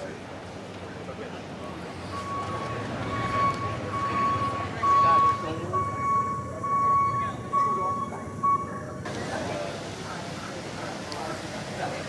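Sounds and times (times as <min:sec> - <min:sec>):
faint chatter: 0:00.0 - 0:12.0
high beeping tone: 0:02.1 - 0:09.0.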